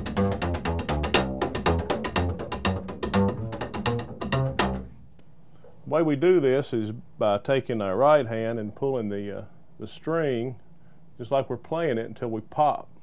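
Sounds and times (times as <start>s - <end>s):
slap upright bass: 0.0s - 5.2s.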